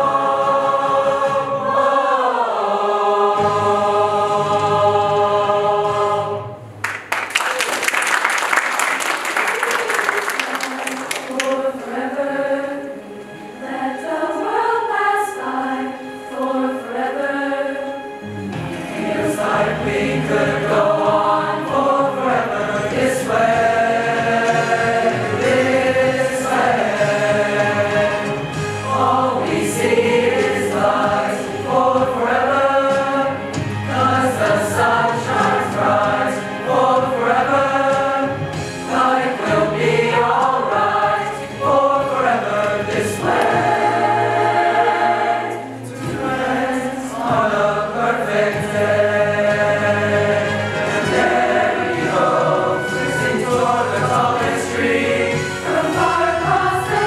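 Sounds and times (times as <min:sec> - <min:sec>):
youth choir singing in harmony: 0:00.0 - 0:06.8, 0:10.0 - 0:57.0.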